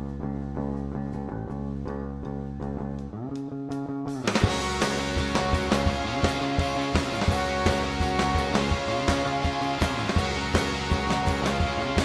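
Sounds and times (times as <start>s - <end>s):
rhythmic guitar over chords: 0.0s - 12.0s.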